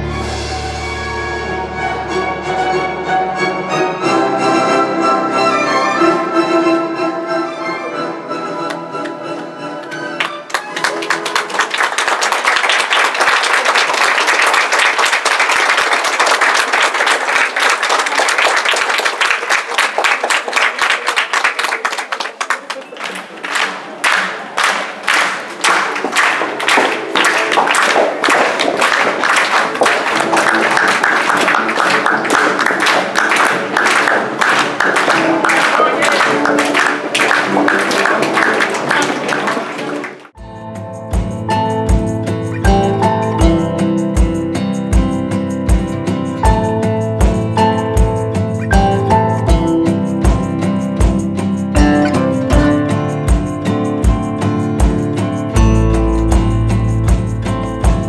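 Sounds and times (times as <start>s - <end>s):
music: 0.0s - 19.1s, 23.1s - 58.0s
audience clapping: 8.6s - 40.4s.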